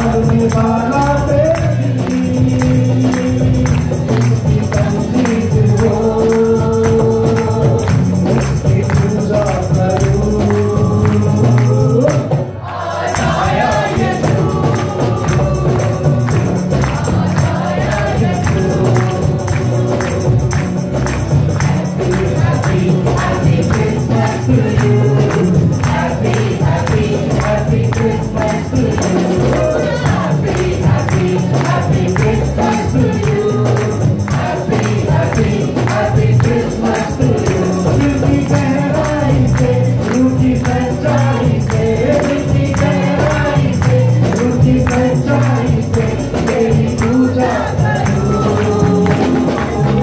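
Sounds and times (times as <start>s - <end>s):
man singing into a microphone: 0.0s - 12.5s, 22.0s - 50.0s
acoustic guitar: 0.0s - 50.0s
tambourine struck on the beat: 0.0s - 50.0s
voices singing along: 0.0s - 50.0s.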